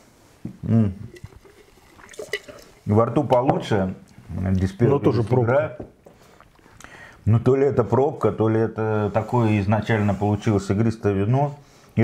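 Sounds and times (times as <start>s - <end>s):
person spitting liquid: 0.5s - 2.9s.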